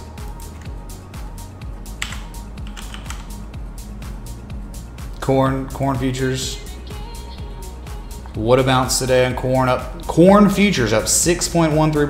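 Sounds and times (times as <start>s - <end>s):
computer keyboard typing clicks: 2.0s - 3.4s.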